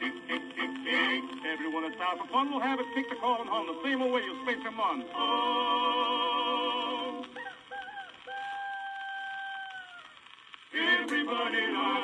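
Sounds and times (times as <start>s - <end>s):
imitated rooster crow: 7.2s - 10.2s.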